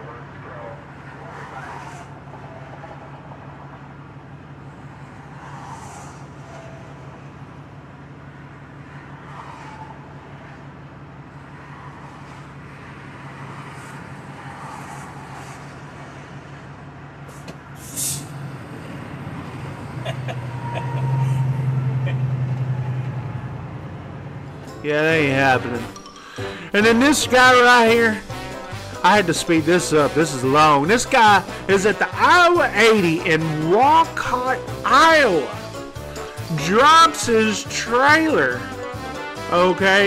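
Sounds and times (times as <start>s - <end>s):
diesel truck engine idling: 16.6s - 39.5s
air brake hiss: 17.3s - 18.4s.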